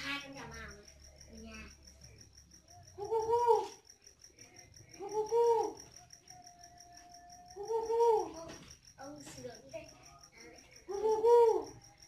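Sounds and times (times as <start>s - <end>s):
insects chirping: 0.0s - 12.0s
dove cooing: 2.8s - 3.9s, 4.8s - 8.7s, 10.7s - 12.0s.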